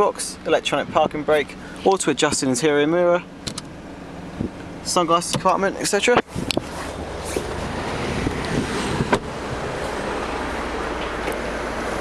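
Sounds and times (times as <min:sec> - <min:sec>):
wind rumbling on microphone: 0:04.3 - 0:04.7, 0:06.1 - 0:11.3.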